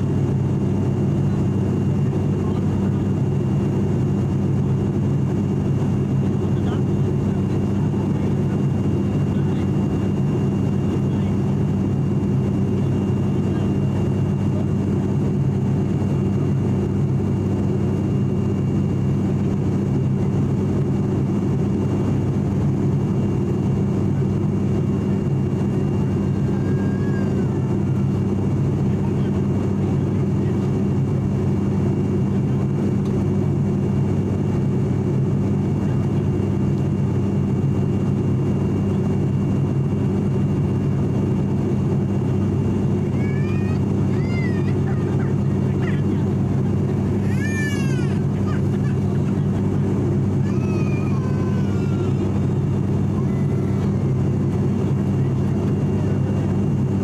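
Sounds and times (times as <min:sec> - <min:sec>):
propeller and engine hum: 0:00.0 - 0:57.0.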